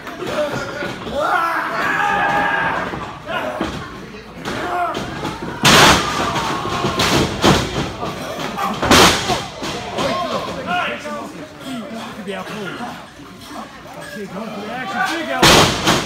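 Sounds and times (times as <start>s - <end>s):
crowd voices: 0.0s - 16.0s.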